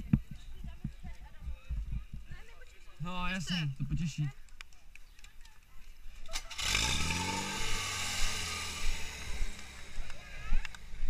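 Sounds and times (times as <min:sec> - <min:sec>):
pump engine revving: 0:06.3 - 0:10.9.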